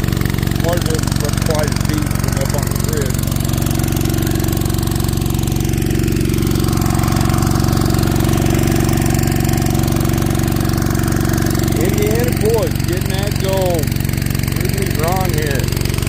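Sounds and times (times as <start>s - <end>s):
small gasoline engine running: 0.0s - 16.0s.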